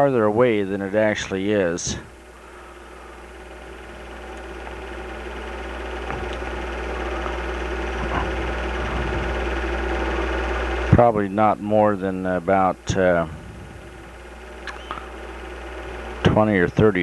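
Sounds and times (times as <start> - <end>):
film projector motor whirring: 0.0 - 17.0
low drone: 1.6 - 17.0
even level tones: 3.2 - 16.3.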